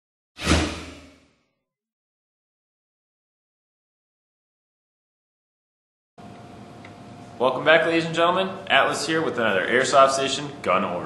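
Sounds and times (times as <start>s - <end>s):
deep whoosh: 0.4s - 1.3s.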